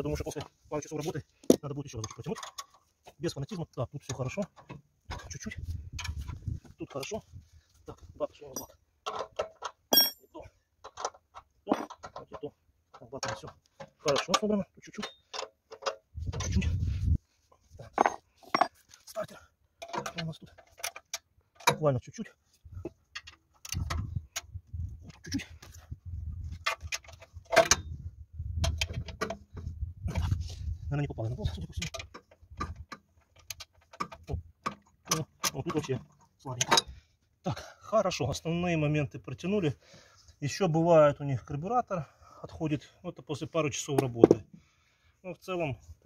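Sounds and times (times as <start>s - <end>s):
metal tool clinking on bolts: 1.5s - 2.8s, 8.5s - 16.6s, 17.9s - 18.9s, 19.8s - 22.0s.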